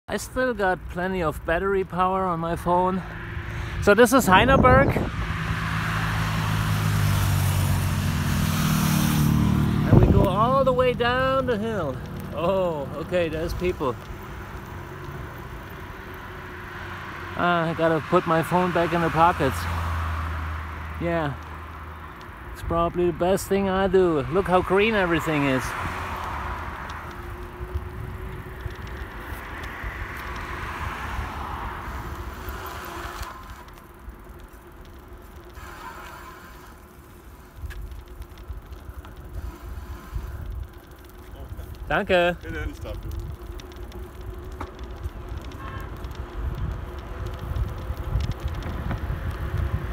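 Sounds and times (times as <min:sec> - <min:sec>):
tyres rolling on asphalt: 0:00.1 - 0:49.9
wind rushing on microphone: 0:02.8 - 0:08.4, 0:09.3 - 0:11.1, 0:22.5 - 0:33.6, 0:41.4 - 0:49.9.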